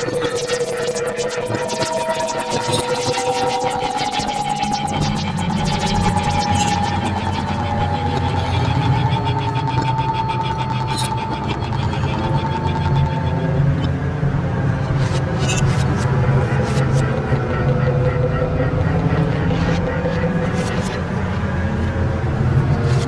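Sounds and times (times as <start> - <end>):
held electronic tone: 0.0 - 13.9.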